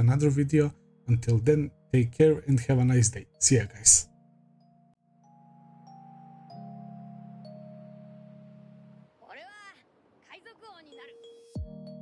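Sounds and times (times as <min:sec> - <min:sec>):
background music: 0:00.0 - 0:09.6, 0:10.4 - 0:12.0.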